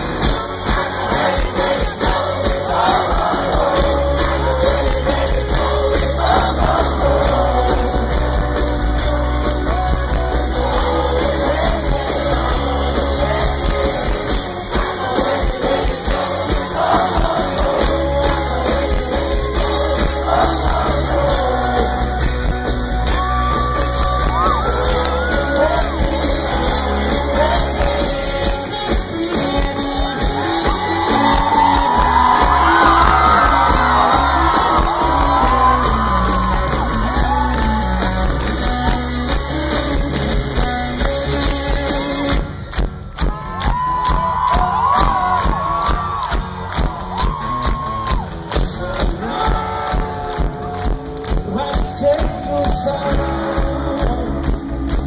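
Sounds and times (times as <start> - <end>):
person singing: 0.0 - 42.6, 43.2 - 55.0
live rock band playing: 0.0 - 55.0
steady drum beat: 0.0 - 55.0
crowd shouts: 22.9 - 26.0, 30.0 - 38.2, 43.2 - 54.0.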